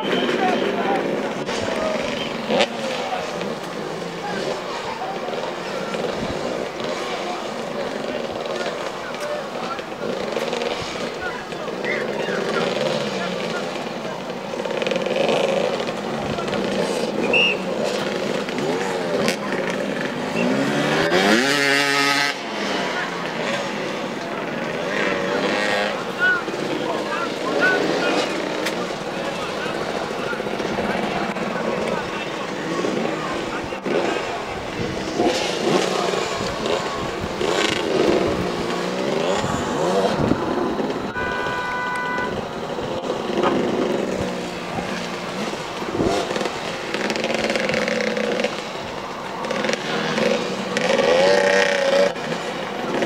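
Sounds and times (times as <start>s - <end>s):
motorcycle engines idling and blipping: 0.0s - 53.0s.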